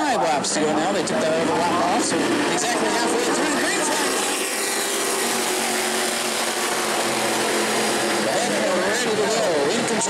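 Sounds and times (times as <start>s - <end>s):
race car engines roaring: 0.0s - 10.0s.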